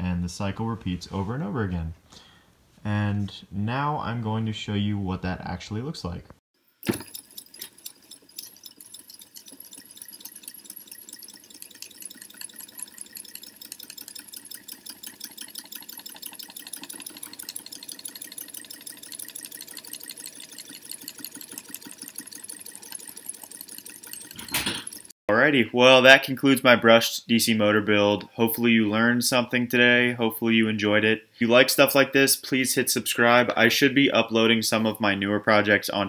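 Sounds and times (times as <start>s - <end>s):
small electric motor clicking: 6.8s - 25.1s.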